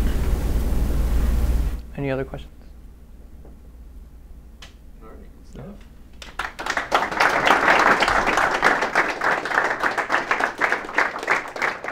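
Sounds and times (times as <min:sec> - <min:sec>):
low hum: 0:00.0 - 0:06.2.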